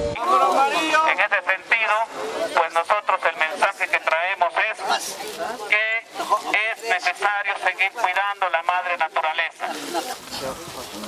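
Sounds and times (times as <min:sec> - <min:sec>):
crowd voices speaking: 0:00.0 - 0:11.0.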